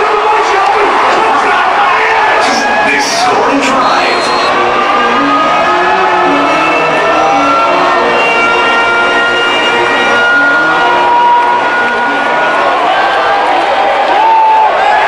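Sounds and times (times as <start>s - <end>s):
stadium crowd roaring and cheering: 0.0s - 15.0s.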